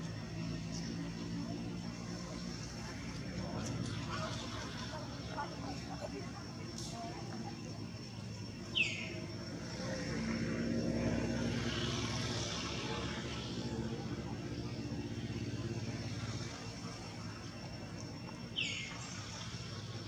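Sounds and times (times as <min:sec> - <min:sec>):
distant engine drone: 0:00.0 - 0:20.0
bird chirp: 0:08.7 - 0:09.2, 0:18.5 - 0:19.2.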